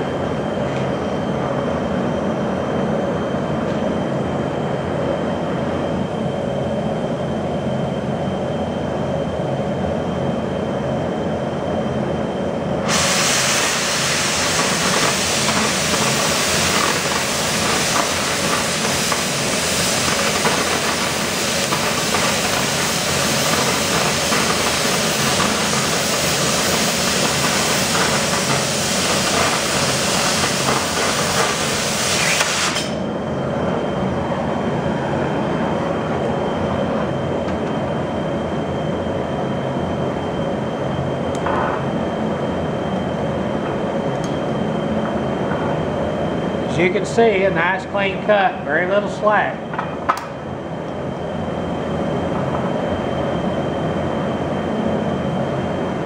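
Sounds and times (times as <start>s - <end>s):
cutting torch oxygen jet hissing: 12.8s - 33.0s
preheat flame hissing: 12.8s - 33.1s.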